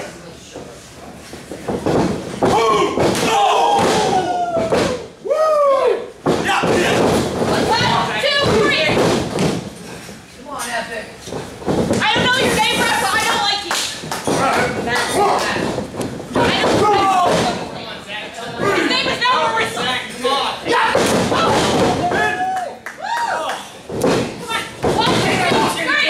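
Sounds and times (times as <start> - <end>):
people shouting: 2.4 - 8.9, 14.4 - 15.6, 16.4 - 17.6, 20.6 - 23.6
bodies slamming onto ring canvas: 6.2 - 10.0, 20.8 - 22.4, 23.8 - 26.0.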